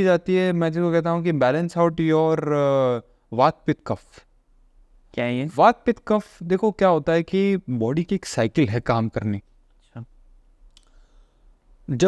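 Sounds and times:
man talking: 0.0 - 4.3, 5.1 - 10.2
mouth click: 10.6 - 11.0.

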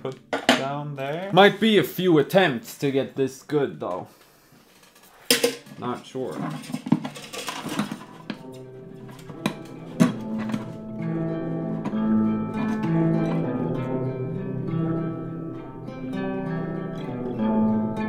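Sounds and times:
plucked string notes: 7.9 - 18.0.

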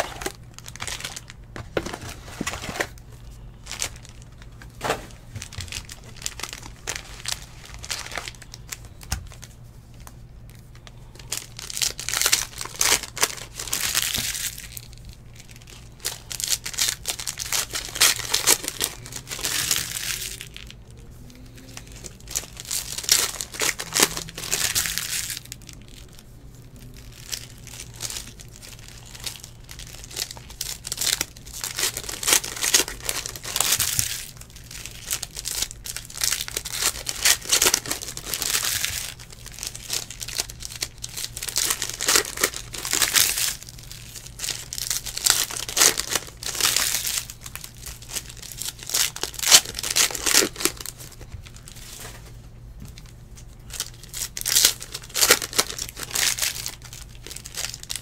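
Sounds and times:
plastic wrappers crinkling and tearing: 0.0 - 58.0.

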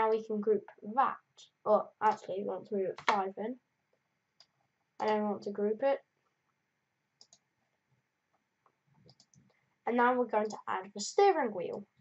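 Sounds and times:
computer mouse clicking: 3.0 - 3.2, 4.4 - 5.2, 7.2 - 7.5, 8.6 - 9.6.

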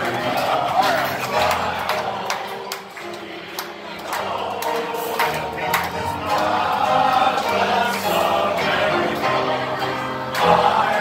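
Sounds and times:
held keyboard accompaniment: 0.0 - 11.0
people singing in chorus: 0.0 - 11.0.

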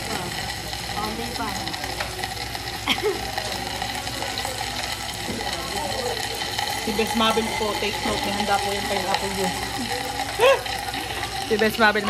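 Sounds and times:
faint restaurant chatter: 0.0 - 12.0
meat sizzling on a grill pan: 0.0 - 12.0.

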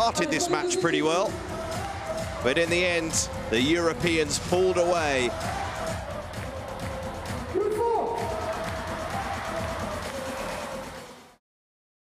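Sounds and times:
crowd noise: 0.0 - 11.4
music in an arena: 0.0 - 11.4.

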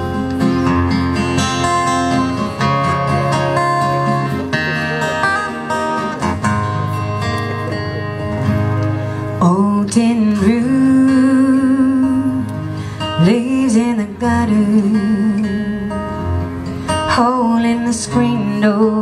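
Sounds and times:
acoustic guitars strumming: 0.0 - 19.0
person singing: 9.3 - 16.1, 17.0 - 19.0.

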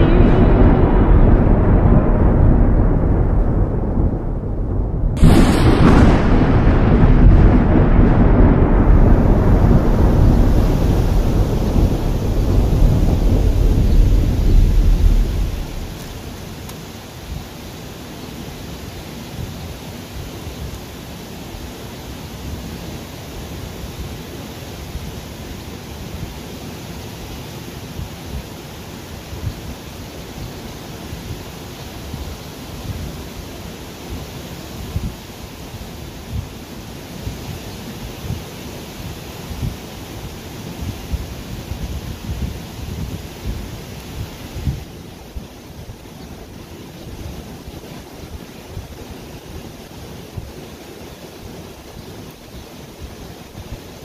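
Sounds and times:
wind buffeting microphone: 0.0 - 17.8, 34.1 - 54.0
swollen river rushing: 0.0 - 54.0.

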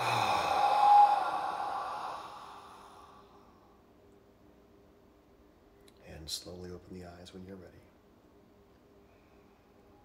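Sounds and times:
man exhaling deeply: 0.0 - 3.6.

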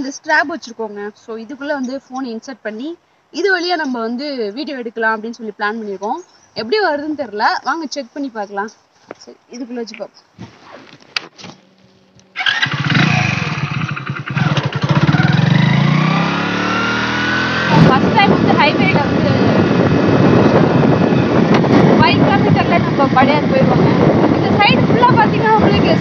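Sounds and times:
motorcycle engine accelerating: 12.3 - 26.0
wind rush: 12.4 - 26.0.

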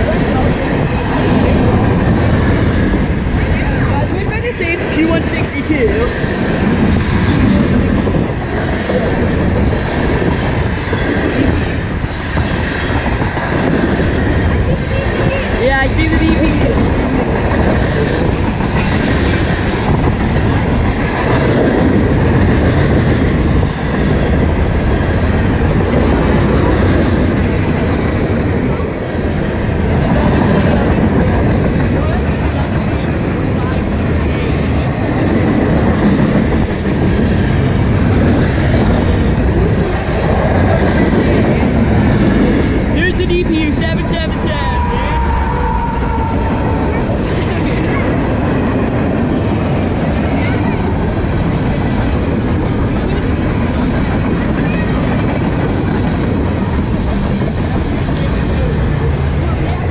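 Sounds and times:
freight train rumbling past: 0.0 - 59.9.

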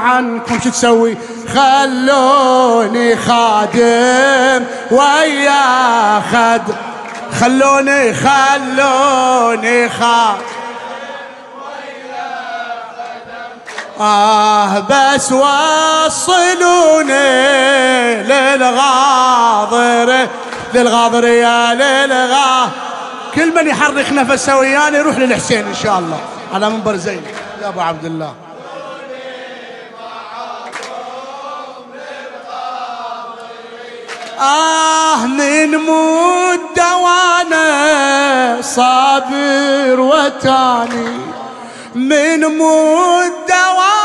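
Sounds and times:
male lead voice singing: 0.0 - 10.8, 13.8 - 28.4, 34.3 - 44.0
group chanting devotional song: 0.0 - 44.0.

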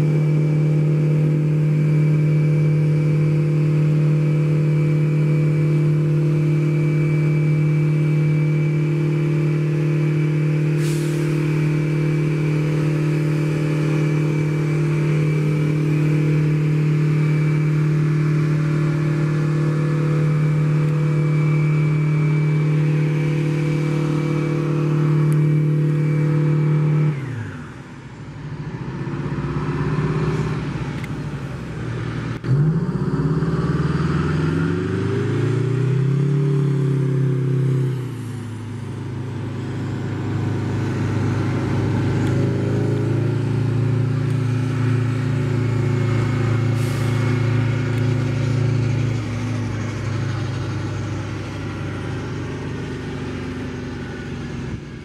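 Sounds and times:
thin high whine: 0.0 - 27.3
turboprop engines droning: 0.0 - 55.0.

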